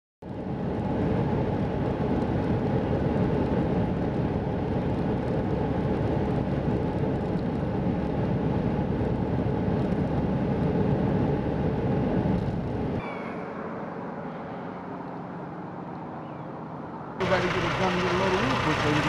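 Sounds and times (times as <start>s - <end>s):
vehicle engine and road noise: 0.2s - 19.0s.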